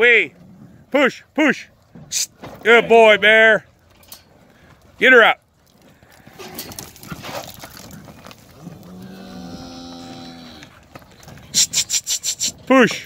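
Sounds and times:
cow mooing: 8.6s - 10.7s.

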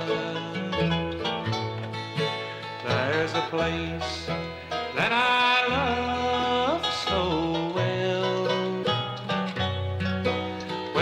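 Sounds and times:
bluegrass music: 0.0s - 11.0s.

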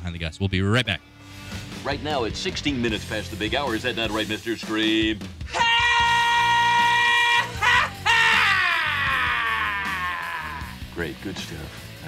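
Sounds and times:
high-pitched scream: 5.5s - 10.7s.

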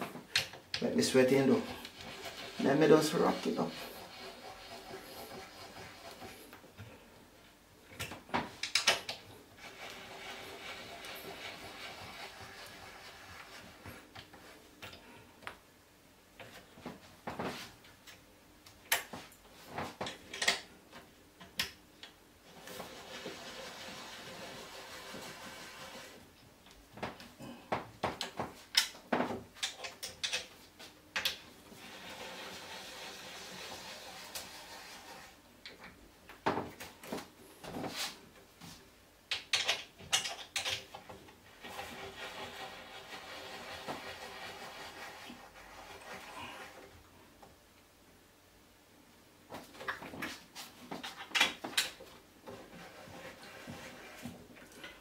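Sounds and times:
steady rubbing of wood: 0.8s - 7.1s, 9.3s - 14.8s, 22.4s - 26.4s, 31.6s - 35.4s, 41.3s - 47.4s, 52.0s - 55.0s
wooden panels knocking and clicking: 39.3s - 41.3s.

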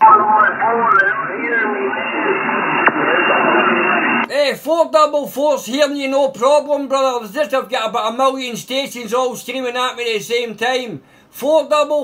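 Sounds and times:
radio static: 0.0s - 4.3s
overlapping radio voices: 0.0s - 4.7s.

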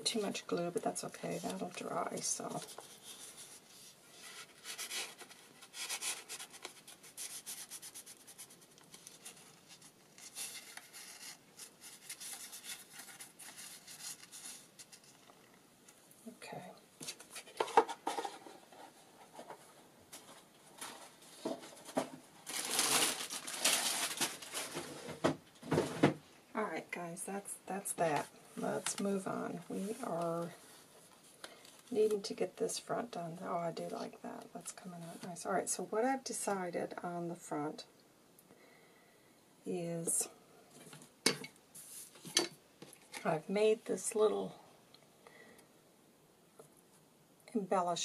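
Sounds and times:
paper rubbing and rustling: 1.4s - 15.4s, 17.0s - 25.2s.

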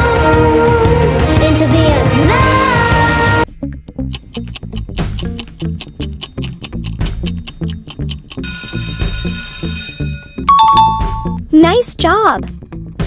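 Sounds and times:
low repeating beat: 4.0s - 8.5s
fast clock ticking: 4.1s - 9.4s
alarm clock ringing: 4.4s - 11.2s.

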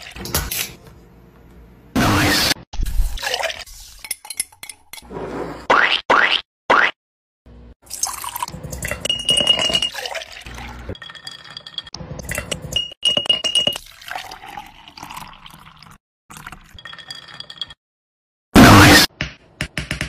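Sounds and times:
glass clinking: 8.9s - 9.9s.

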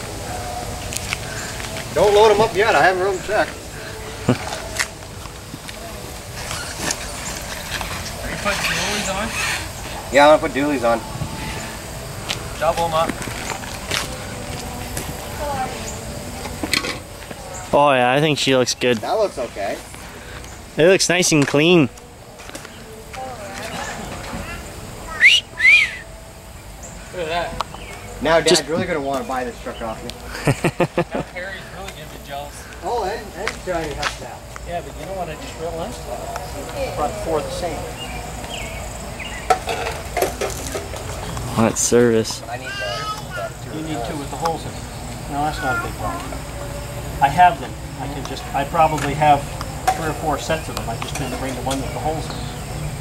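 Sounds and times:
faint distant voices: 0.0s - 53.0s
outdoor background noise: 0.0s - 53.0s.

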